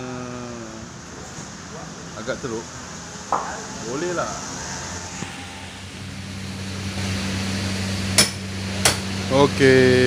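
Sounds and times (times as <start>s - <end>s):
low hum: 2.3s - 10.0s
sharp knocks: 8.2s - 9.1s.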